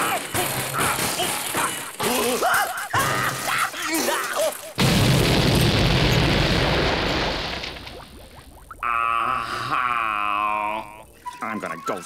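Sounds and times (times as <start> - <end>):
cartoon explosion: 4.8 - 8.8.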